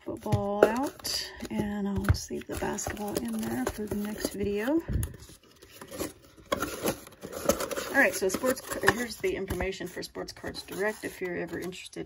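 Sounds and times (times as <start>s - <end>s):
hands tapping cardboard box: 0.2s - 4.8s
paper card rustling and scraping: 0.2s - 12.0s.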